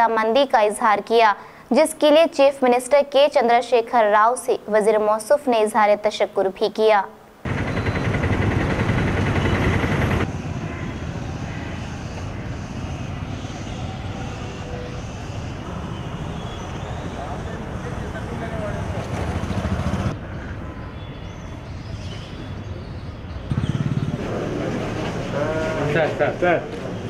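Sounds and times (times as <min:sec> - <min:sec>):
steady rushing noise: 0:07.4 - 0:20.2.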